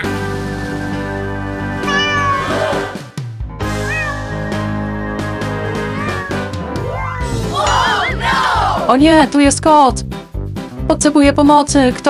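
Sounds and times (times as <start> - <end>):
background music: 0.0 - 12.0
cat meowing: 1.8 - 2.7, 3.6 - 4.8, 5.8 - 7.3.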